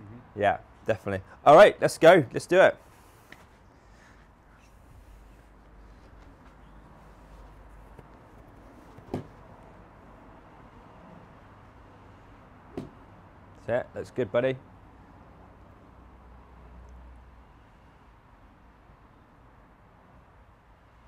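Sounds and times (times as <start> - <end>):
faint outdoor background: 0.0 - 21.0.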